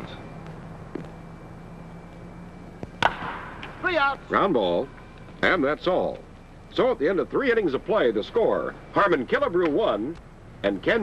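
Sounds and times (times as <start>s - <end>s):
film soundtrack hiss and hum: 0.0s - 11.0s
wooden bat cracking ball: 2.8s - 3.8s.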